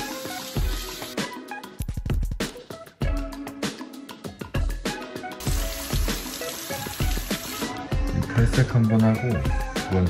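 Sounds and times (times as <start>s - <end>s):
hand sprayer water hiss: 0.0s - 1.2s, 5.4s - 7.9s
background music: 0.0s - 10.0s.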